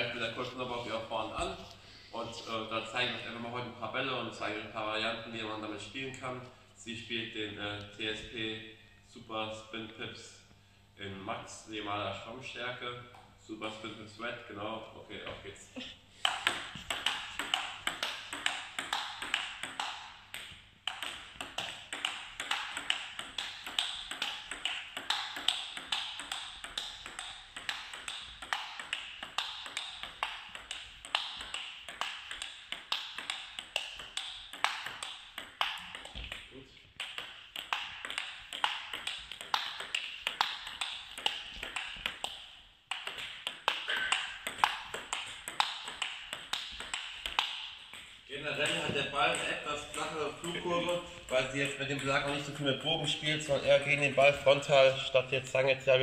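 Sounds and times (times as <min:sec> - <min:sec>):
table tennis ball clicking: 0:16.3 - 0:52.6.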